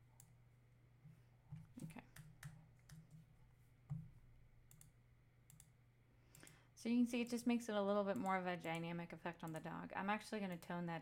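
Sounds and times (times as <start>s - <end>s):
low electrical hum: 0.0s - 11.0s
computer mouse clicks: 3.9s - 6.6s, 8.1s - 9.8s.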